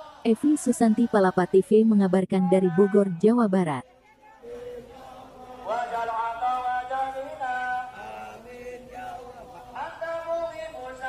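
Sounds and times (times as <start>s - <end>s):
man chanting through loudspeaker: 5.8s - 11.0s.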